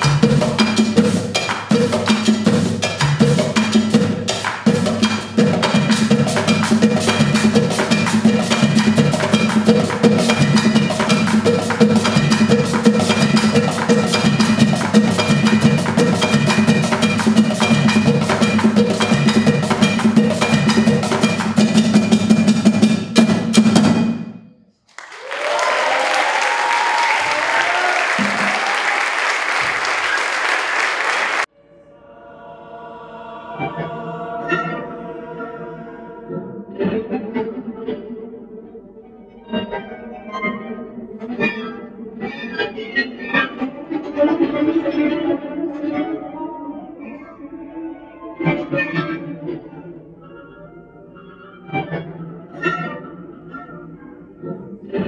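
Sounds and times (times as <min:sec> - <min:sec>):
hand drums playing fast rhythm: 0:00.0 - 0:23.9
audience applause: 0:24.9 - 0:31.5.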